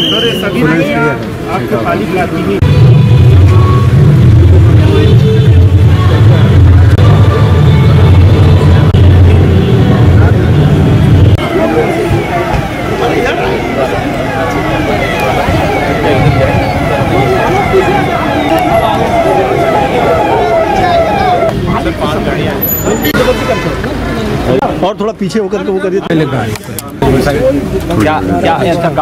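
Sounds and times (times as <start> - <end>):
crowd voices: 0.0 - 29.0
police siren sweeping: 11.3 - 21.5.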